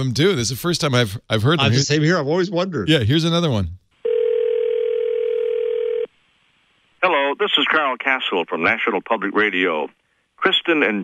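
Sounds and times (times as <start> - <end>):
steady telephone tone: 4.0 - 6.1.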